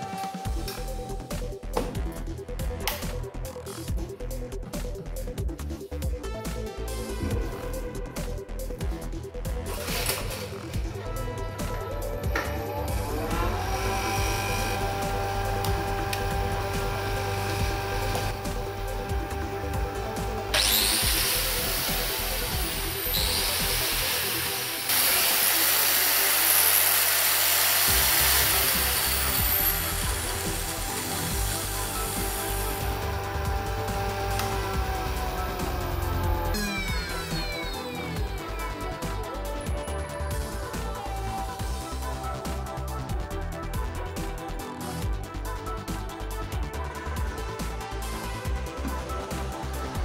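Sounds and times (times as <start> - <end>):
angle grinder whining: 9.6 - 39.6
electric motor whining: 9.7 - 39.0.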